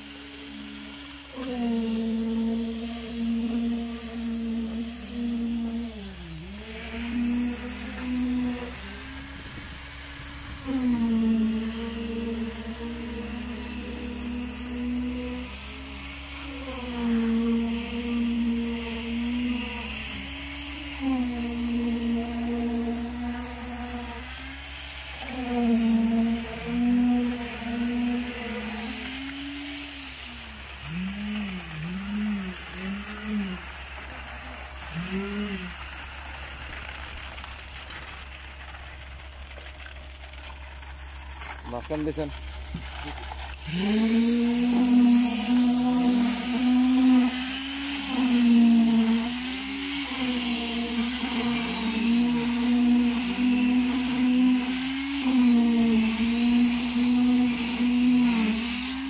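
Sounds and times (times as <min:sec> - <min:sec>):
concrete vibrator whining: 0:00.0 - 0:59.0
low engine drone: 0:00.0 - 0:59.0.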